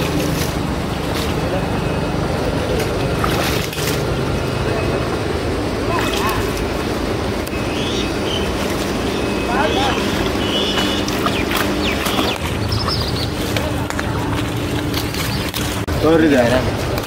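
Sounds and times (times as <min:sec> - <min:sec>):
water pump engine humming: 0:00.0 - 0:17.0.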